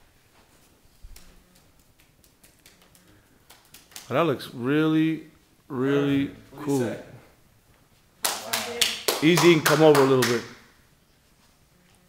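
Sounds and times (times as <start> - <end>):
hand claps: 1.9 - 4.2, 8.2 - 10.7.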